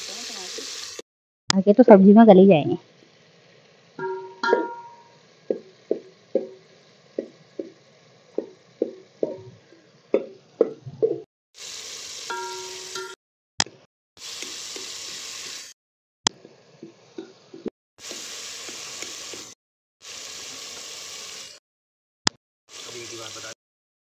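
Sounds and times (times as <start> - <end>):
metal spoon knocking steel pot: 4.0 - 5.1
steady hiss: 22.8 - 23.6.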